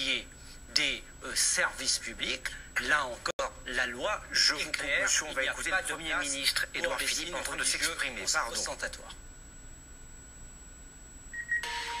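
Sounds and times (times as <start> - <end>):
low background hum: 0.0 - 12.0
high electronic beep: 11.4 - 12.0
loud electronic tone: 11.4 - 12.0.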